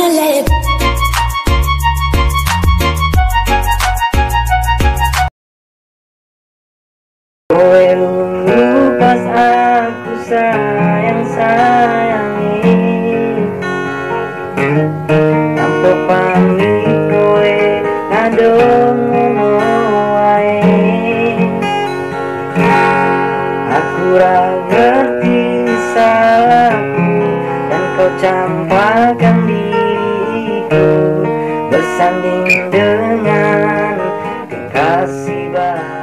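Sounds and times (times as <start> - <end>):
man singing pop ballad: 0.0 - 0.6, 7.5 - 13.7, 15.4 - 36.0
strummed acoustic guitar: 0.0 - 5.3, 7.5 - 36.0.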